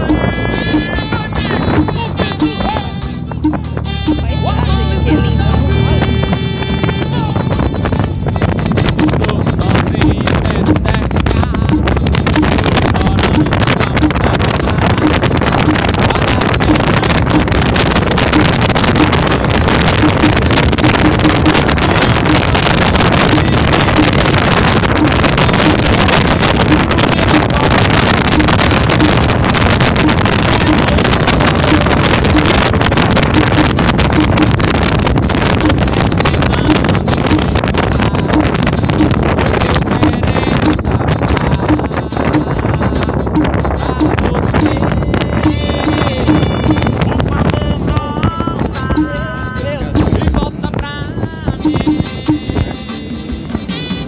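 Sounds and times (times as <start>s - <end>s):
vehicle engine running: 0.0s - 40.9s
wind buffeting microphone: 0.0s - 52.8s.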